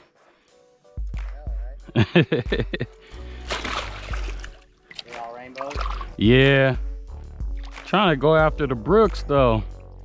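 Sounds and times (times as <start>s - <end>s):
background music: 0.0s - 10.0s
fish thrashing in shallow water: 3.2s - 6.2s.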